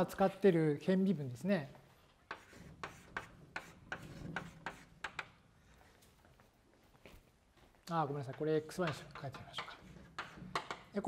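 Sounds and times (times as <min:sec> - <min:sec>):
chalk writing on a blackboard: 0:02.2 - 0:05.4, 0:08.9 - 0:10.9.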